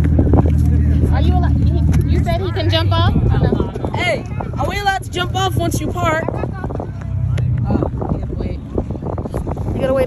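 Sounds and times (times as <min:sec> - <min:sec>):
boat engine idling: 0:00.0 - 0:10.0
people talking: 0:00.6 - 0:08.7, 0:09.8 - 0:10.0.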